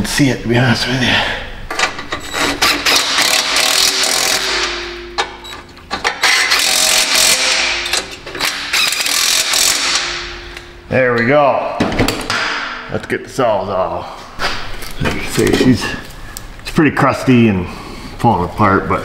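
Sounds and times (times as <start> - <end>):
power saw cutting metal pipe: 2.3 - 5.4, 6.1 - 10.3.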